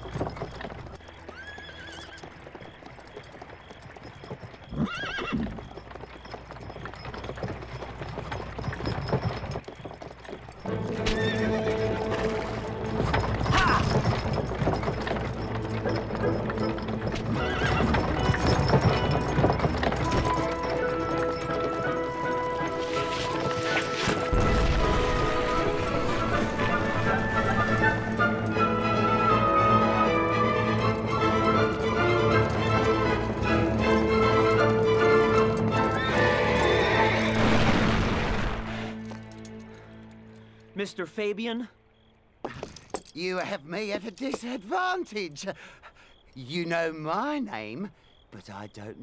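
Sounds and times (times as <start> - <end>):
horse hoofbeats on dirt: 0.0 - 37.7, 42.4 - 45.4
horse whinnying: 1.0 - 2.4, 4.3 - 24.4, 34.2 - 37.7
background music: 10.3 - 42.1.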